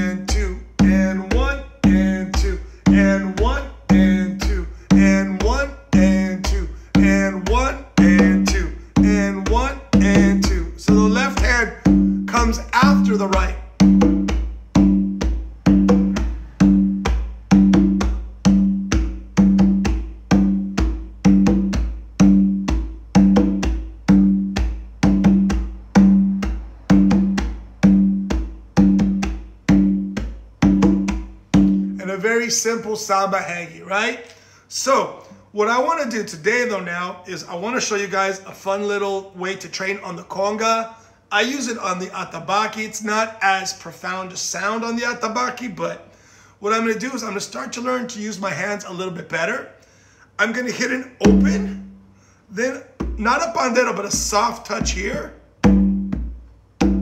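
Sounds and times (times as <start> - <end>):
conga played by hand: 0.0 - 32.0, 51.2 - 52.0, 53.0 - 57.0.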